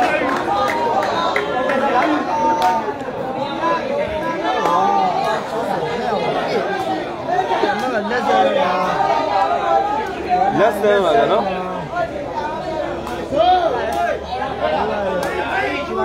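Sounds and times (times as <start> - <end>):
crowd chattering: 0.0 - 16.0.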